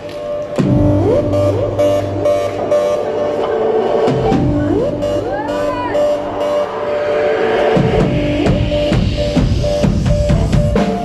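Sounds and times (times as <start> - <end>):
steady beat: 0.0 - 11.0
synthesizer line with rising slides: 0.6 - 10.5.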